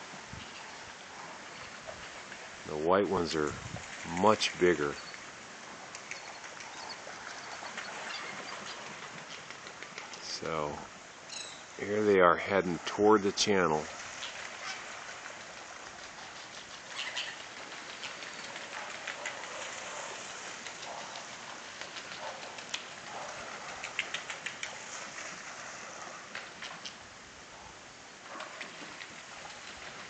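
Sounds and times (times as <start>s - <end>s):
steady waterside hiss: 0.0s - 30.0s
faint clicks: 5.9s - 6.9s.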